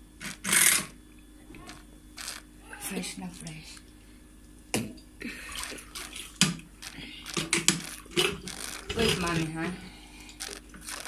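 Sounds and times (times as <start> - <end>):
juice dripping into plastic cup: 10.1 - 11.0.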